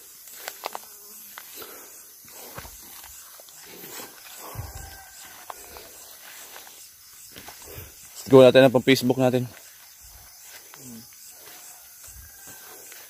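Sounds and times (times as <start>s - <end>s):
footsteps in undergrowth: 0.0s - 13.0s.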